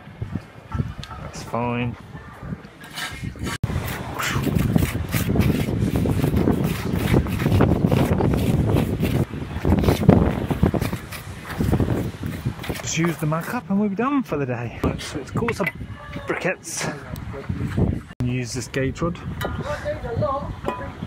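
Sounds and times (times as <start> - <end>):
strong wind buffeting microphone: 0.0 - 13.6, 14.7 - 21.0.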